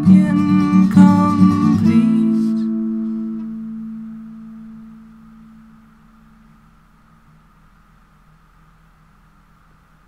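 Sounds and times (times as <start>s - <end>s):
acoustic guitar chord ringing: 0.0s - 7.3s.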